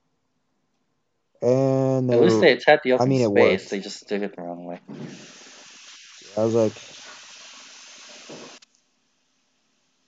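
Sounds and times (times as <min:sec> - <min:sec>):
faint voice: 0:01.4 - 0:04.1
microphone hiss: 0:01.4 - 0:10.0.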